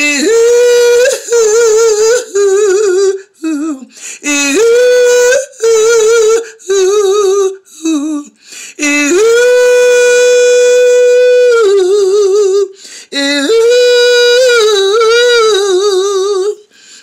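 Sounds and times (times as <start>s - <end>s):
woman singing without words: 0.0s - 17.0s
woman breathing: 3.9s - 4.2s, 8.4s - 8.8s, 12.7s - 13.1s, 16.6s - 17.0s.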